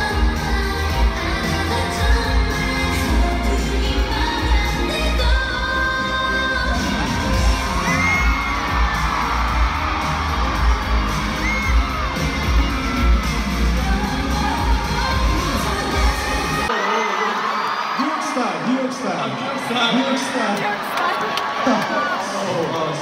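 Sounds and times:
dance track with singing: 0.0 - 16.7
fans screaming and cheering: 0.0 - 23.0.

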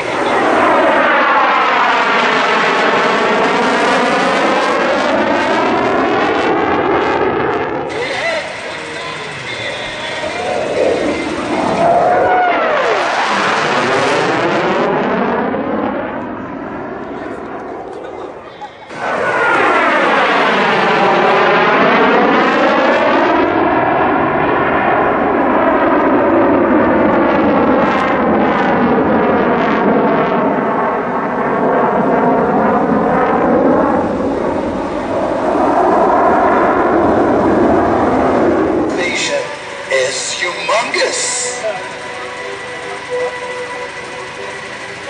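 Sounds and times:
jet engines in afterburner: 0.0 - 45.0.

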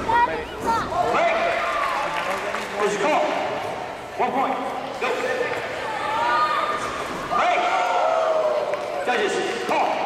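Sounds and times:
people shouting and yelling: 0.0 - 2.3, 5.0 - 10.0.

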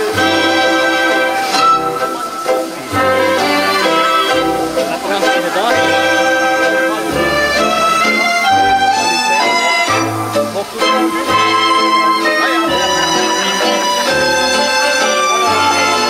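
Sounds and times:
live band playing dance music: 0.0 - 16.0.

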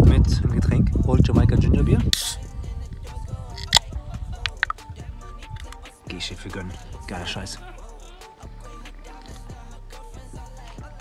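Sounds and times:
quiet background music: 0.0 - 11.0
can ring-pull clicking: 2.1 - 2.4, 3.6 - 3.8.

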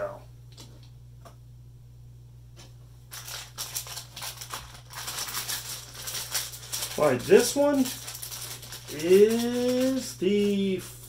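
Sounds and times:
plastic packaging crinkling: 3.1 - 10.7.

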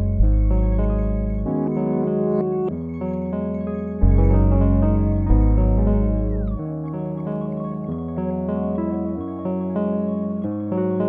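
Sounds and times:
deep bass note: 0.0 - 1.7, 4.0 - 6.6
sustained instrumental chords: 0.0 - 11.0.

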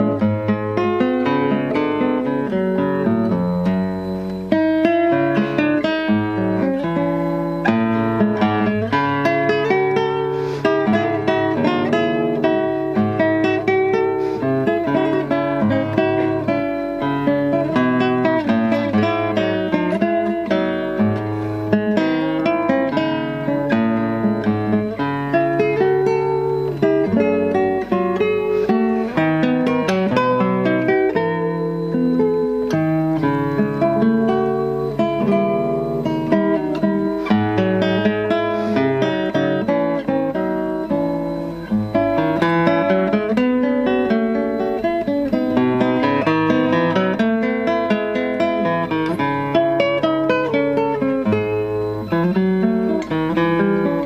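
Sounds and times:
nylon-string guitar fingerstyle: 0.0 - 54.0.

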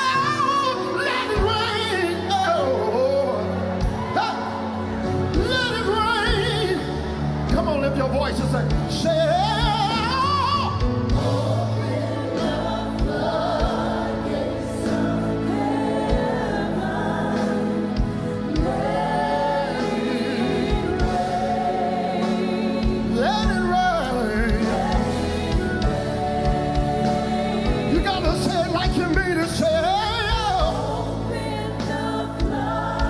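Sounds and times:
man singing with vibrato: 23.0 - 25.1.

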